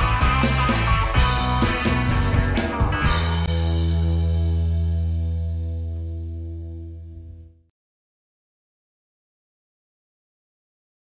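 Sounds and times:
rock band final chord: 0.0s - 7.6s.

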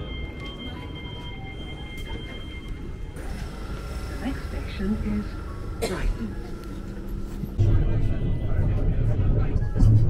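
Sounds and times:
train low rumble: 0.0s - 10.0s.

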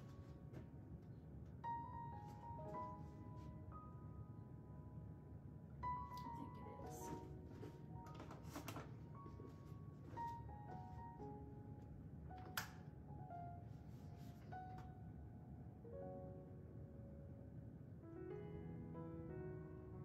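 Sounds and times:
gentle instrumental music: 0.0s - 20.0s.

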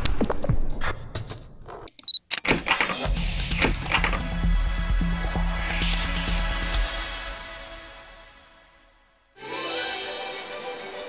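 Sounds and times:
music: 2.6s - 11.0s.

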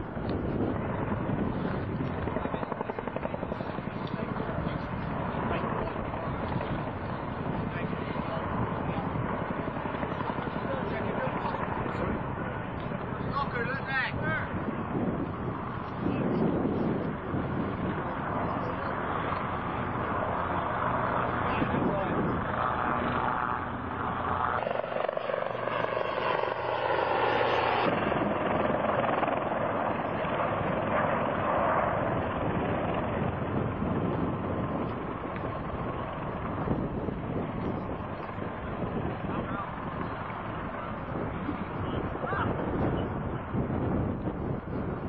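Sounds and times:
helicopter passing overhead: 0.0s - 45.0s
helicopter rotor and engine noise: 0.0s - 45.0s.

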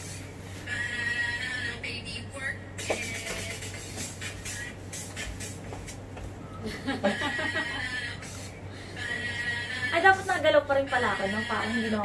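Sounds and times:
woman laughing: 6.6s - 8.2s.

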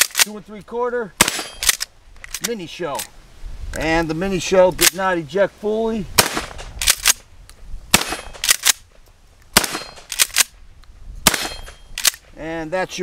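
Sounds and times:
shotgun shots: 1.2s - 1.8s, 6.2s - 7.2s, 7.9s - 8.8s, 9.5s - 10.6s, 11.2s - 12.2s.

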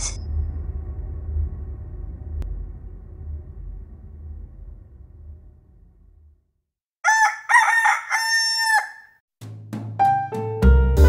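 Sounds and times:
rooster crowing: 7.0s - 9.2s.

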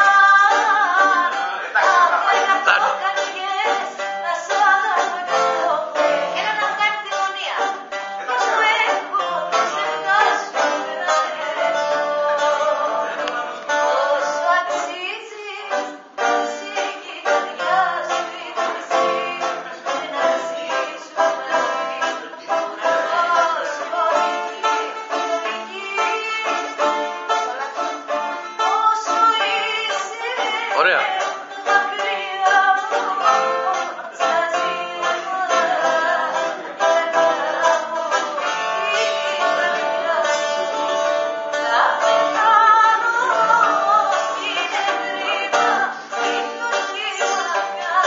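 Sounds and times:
bouzouki plucked and strummed: 0.0s - 48.0s
woman singing: 0.0s - 48.0s.

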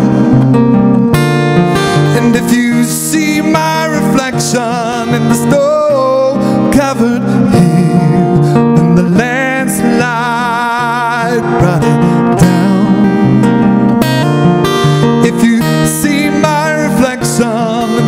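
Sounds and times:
acoustic guitar strumming: 0.0s - 18.0s
man singing: 1.7s - 18.0s.

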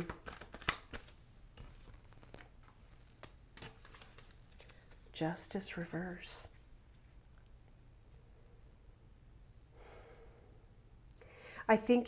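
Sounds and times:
cards shuffled by hand: 0.0s - 5.1s.

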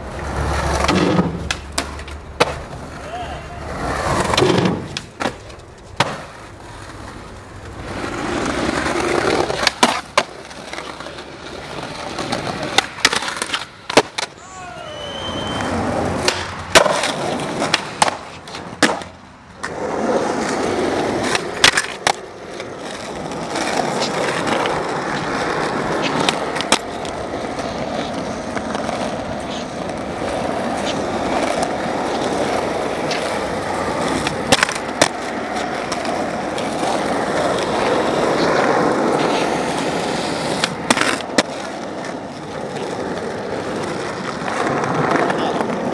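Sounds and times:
skateboard wheels rolling on pavement: 0.0s - 45.9s
skateboard clack on landing: 16.2s - 19.8s.

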